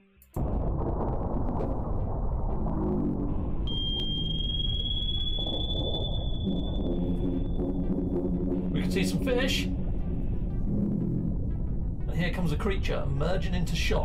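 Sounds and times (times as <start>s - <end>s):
deep underwater rumble: 0.4s - 12.9s
faint low notes: 0.4s - 14.0s
high sonar-like tone: 3.3s - 11.4s.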